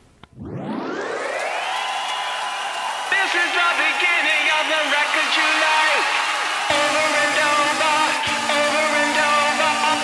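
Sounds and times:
tone sweeping up from low pitch: 0:00.3 - 0:01.6.

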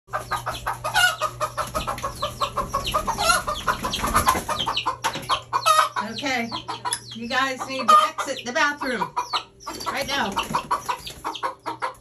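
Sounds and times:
chickens clucking: 0:00.1 - 0:12.0
chicken squawks: 0:00.2 - 0:12.0.

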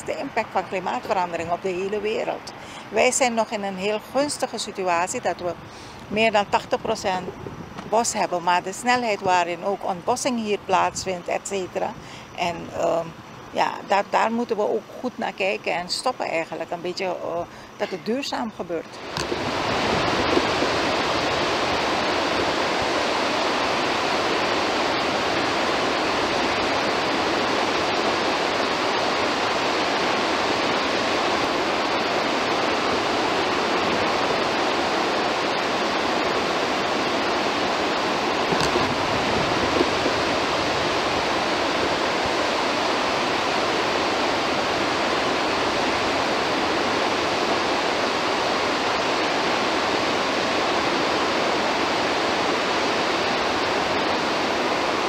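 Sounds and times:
water rushing through spillway: 0:18.9 - 0:55.0.

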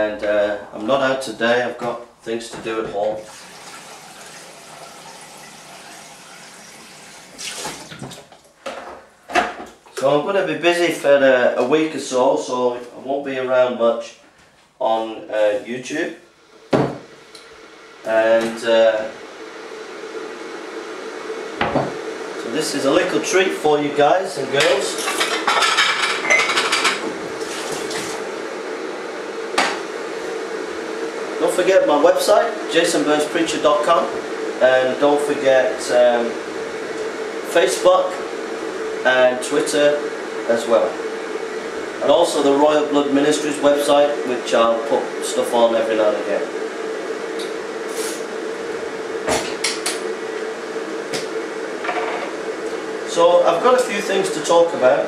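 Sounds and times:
knock on worktop: 0:16.7 - 0:17.1, 0:21.6 - 0:22.0
kitchenware clinking and knocking: 0:24.6 - 0:27.0.

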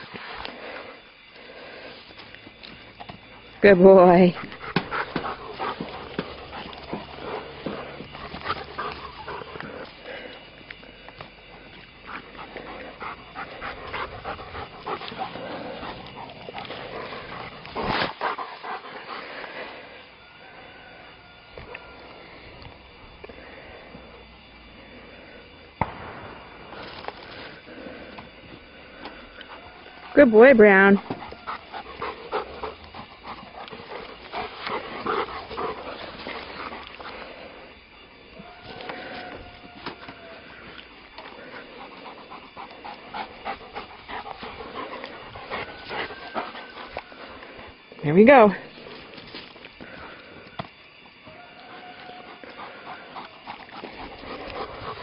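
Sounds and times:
dog panting: 0:03.3 - 0:10.5, 0:11.6 - 0:19.8, 0:29.2 - 0:37.9, 0:41.1 - 0:48.5, 0:52.2 - 0:55.0.

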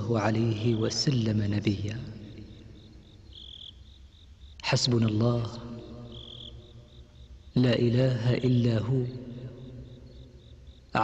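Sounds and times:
crickets chirping: 0:00.0 - 0:11.0.

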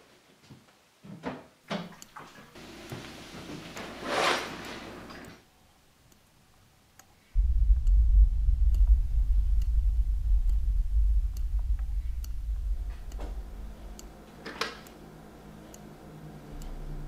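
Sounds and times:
clock ticking: 0:07.0 - 0:14.2
deep low rumble drone: 0:07.4 - 0:14.4, 0:16.3 - 0:17.0.

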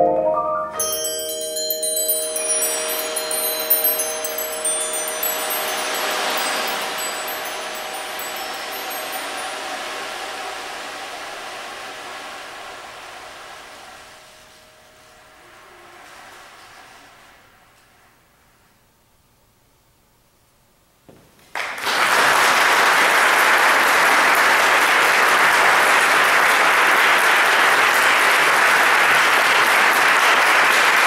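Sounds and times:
ringing mallet instrument tones: 0:00.0 - 0:10.2
shimmer of high chimes: 0:00.7 - 0:10.8.

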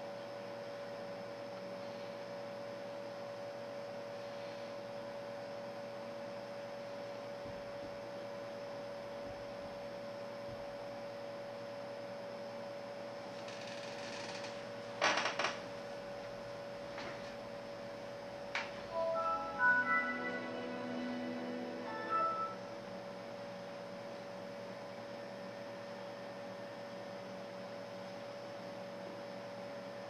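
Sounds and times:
steady mid-pitched hum: 0:00.0 - 0:13.6, 0:14.4 - 0:30.0.

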